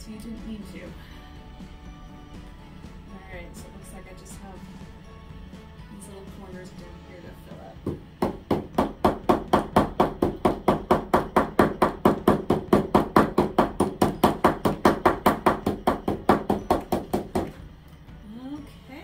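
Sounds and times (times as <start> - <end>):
canvas knocking on wooden desk: 7.8 - 17.6.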